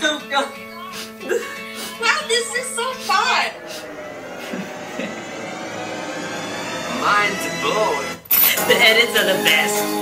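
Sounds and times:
steady rushing whirring noise: 0:01.6 - 0:08.3.

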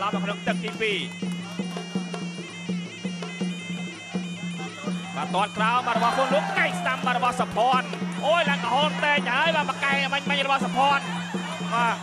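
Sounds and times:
nasal reed pipe melody: 0:00.0 - 0:12.0
steady drumbeat: 0:00.0 - 0:12.0.

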